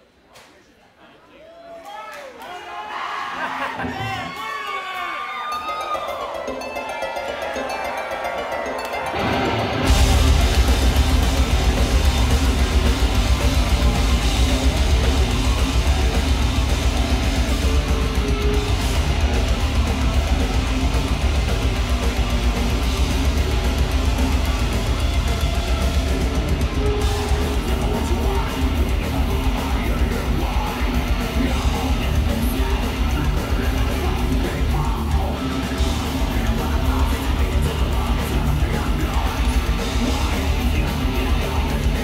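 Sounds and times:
metal band playing live: 5.4s - 42.0s.

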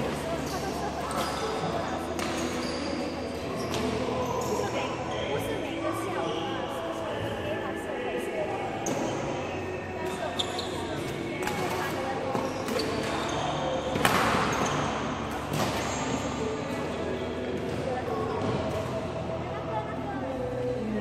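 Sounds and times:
shoe squeaks on court floor: 0.4s - 4.8s, 10.2s - 16.4s.

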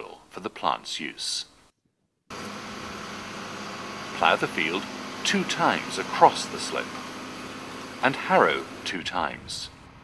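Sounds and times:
tractor engine droning: 2.3s - 10.0s.

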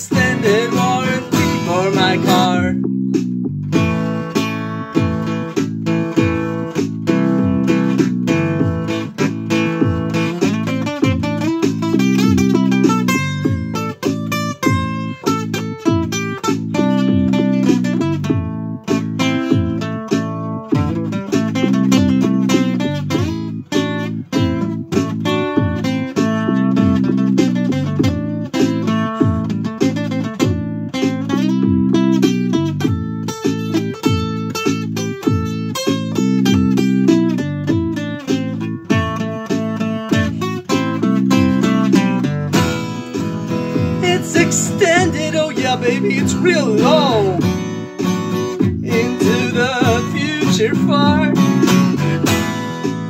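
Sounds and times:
acoustic guitar strumming: 0.0s - 53.0s.

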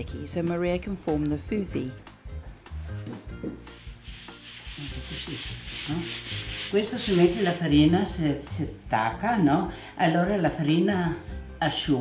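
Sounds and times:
hand rubbing flour on dough: 3.7s - 7.7s.

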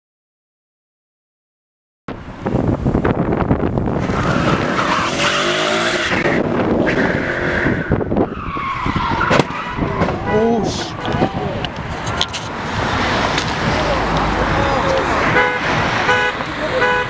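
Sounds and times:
car engine revving hard: 3.9s - 8.1s, 12.6s - 17.0s
tyres squealing and skidding: 4.0s - 16.8s.

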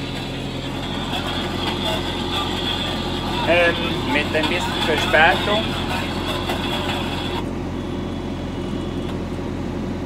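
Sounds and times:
high machinery whine: 0.0s - 10.0s
tractor engine running: 0.0s - 10.0s.

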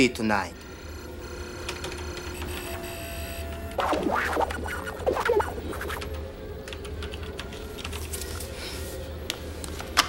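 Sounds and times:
steady low hum: 3.4s - 7.8s
electronic beeps and chirps: 3.8s - 6.1s
warbling electronic burst: 3.8s - 6.2s.

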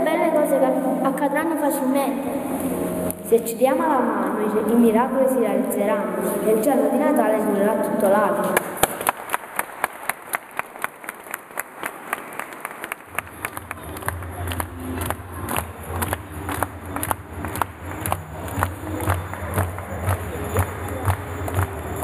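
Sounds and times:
audience clapping: 8.6s - 22.0s.

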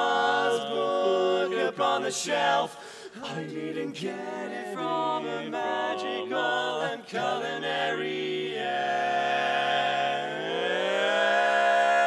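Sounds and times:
barbershop quartet singing a chord: 0.0s - 11.0s.

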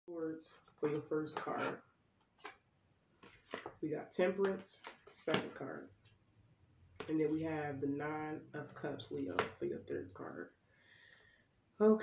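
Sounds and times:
card rustling: 0.5s - 6.2s.

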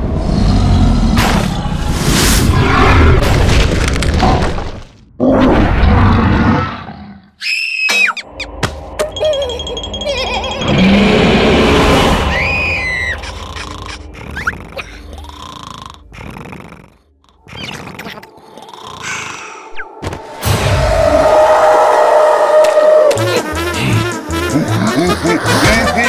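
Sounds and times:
background music: 8.1s - 26.0s.

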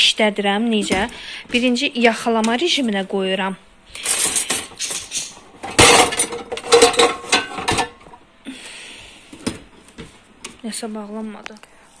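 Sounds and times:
dishwasher racks rattling: 4.1s - 8.1s.

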